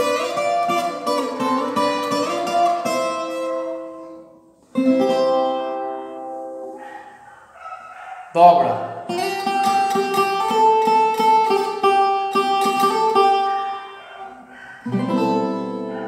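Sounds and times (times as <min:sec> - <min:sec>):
guitar chord ringing: 0:00.0 - 0:06.8, 0:09.1 - 0:14.0, 0:14.9 - 0:16.0
plucked guitar melody: 0:00.0 - 0:06.8, 0:09.0 - 0:16.0.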